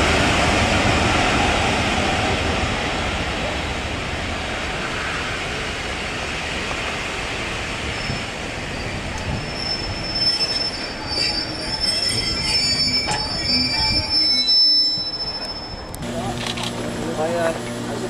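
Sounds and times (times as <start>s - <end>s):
train wheels rumbling: 0.0s - 18.0s
high brake squeal: 7.9s - 16.0s.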